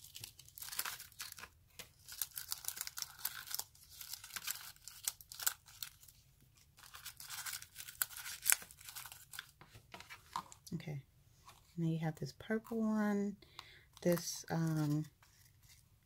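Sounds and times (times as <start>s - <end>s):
thin foil crinkling: 0.0s - 9.6s, 14.0s - 15.8s.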